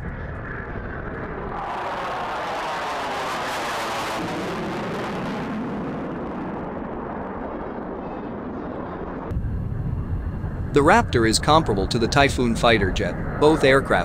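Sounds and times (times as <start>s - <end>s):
jet engines in afterburner: 0.0s - 14.0s.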